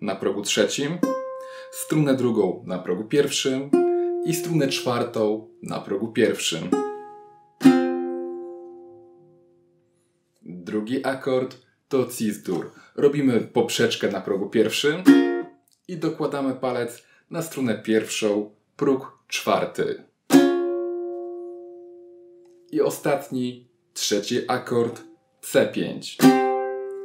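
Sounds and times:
ukulele chord strummed: 1.0 - 1.8, 3.7 - 5.6, 6.5 - 9.4, 15.0 - 15.5, 20.3 - 22.5, 26.2 - 27.0.

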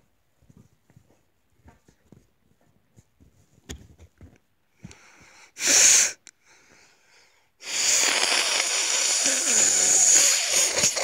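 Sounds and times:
person forcing breath out: 4.8 - 11.0.

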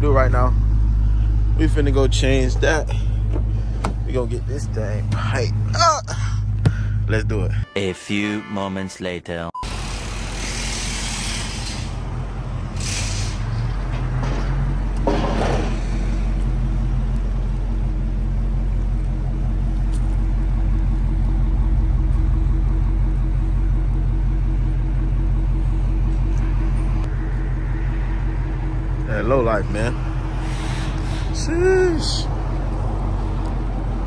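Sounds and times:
car engine idling: 0.0 - 7.6, 9.7 - 34.0.

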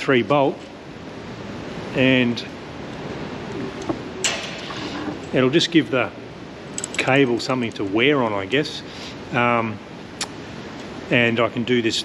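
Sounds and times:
steady background hiss: 0.0 - 12.0
metal bolt scraping: 4.2 - 5.4.

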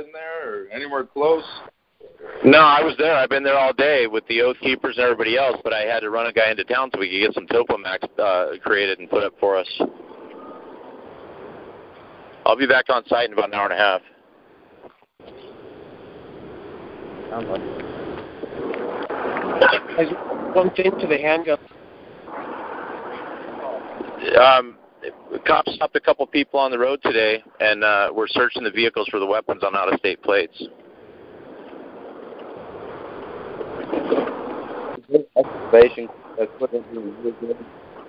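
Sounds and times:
road and wind noise over phone: 0.0 - 38.0.

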